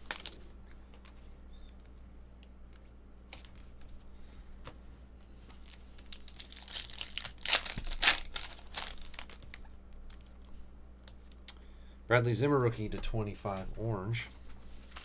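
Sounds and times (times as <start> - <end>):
foil wrapper tearing and crinkling: 0.0 - 0.4, 5.7 - 10.2.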